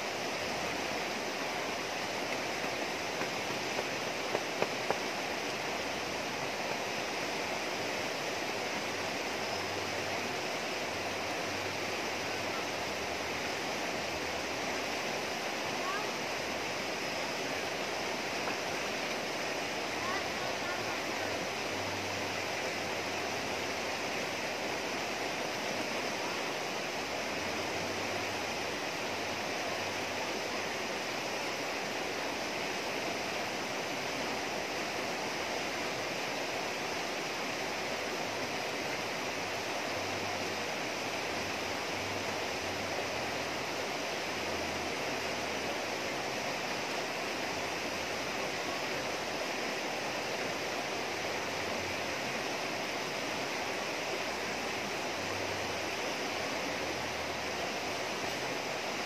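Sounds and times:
river rushing over rocks: 0.0s - 59.0s.

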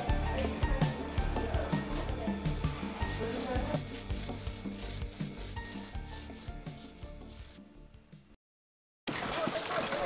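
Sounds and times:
paint roller rubbing on wall: 1.8s - 7.8s.

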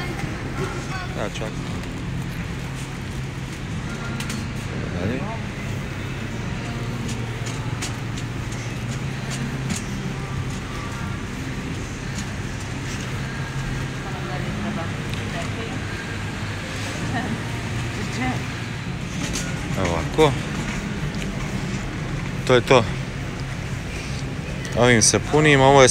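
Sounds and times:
shopping cart wheels rumbling: 0.0s - 25.9s.

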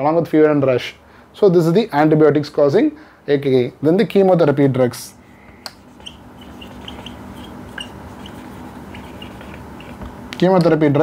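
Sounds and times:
faint hiss and hum: 0.0s - 11.0s
marker squeaking on whiteboard: 5.5s - 10.2s.

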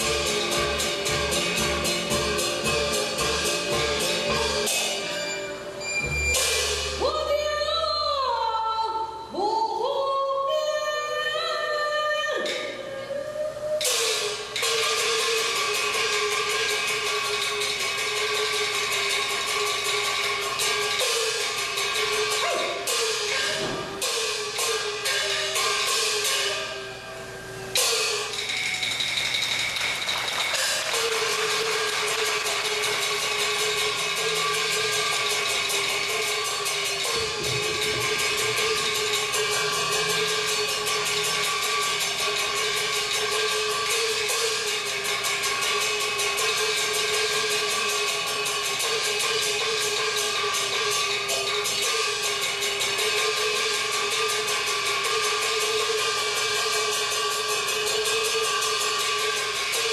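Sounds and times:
loud cymbal crash: 0.0s - 7.1s, 13.8s - 26.9s, 30.6s - 59.9s
drums cymbals and wood block: 0.0s - 7.5s, 12.4s - 59.9s.

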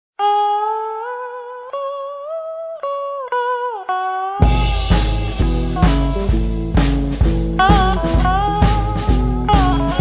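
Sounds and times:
blues guitar notes with slides: 0.2s - 10.0s.

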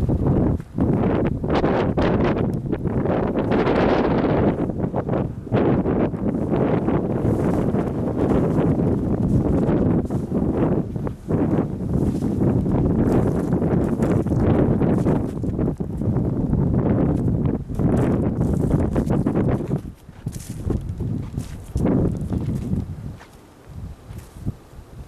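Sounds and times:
wind buffeting microphone: 0.0s - 25.0s
footsteps crunching on snow: 3.4s - 16.2s, 17.0s - 24.5s.

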